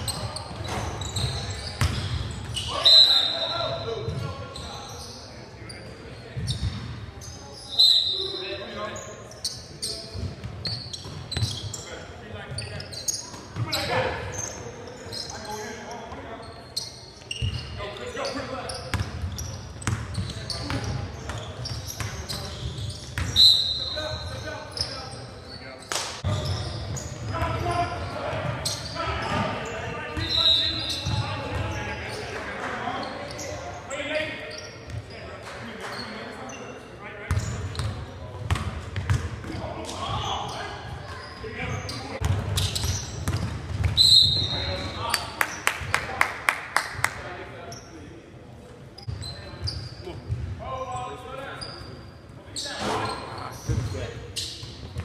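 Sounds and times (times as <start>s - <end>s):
sneakers squeaking: 0.0s - 46.0s, 47.0s - 55.0s.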